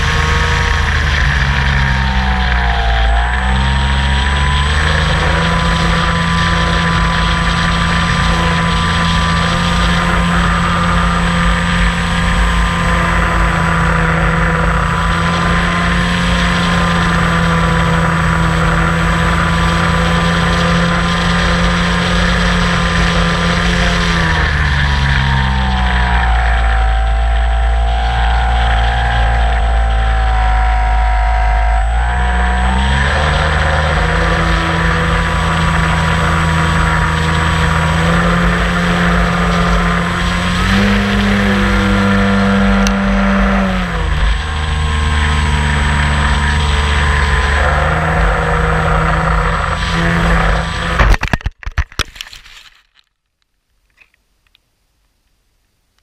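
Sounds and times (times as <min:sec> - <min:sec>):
model aeroplane motor: 0:00.0 - 0:51.3.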